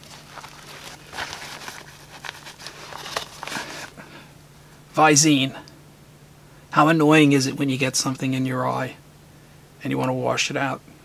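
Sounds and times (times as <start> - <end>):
rustling in a fabric pouch: 0.0 - 4.0.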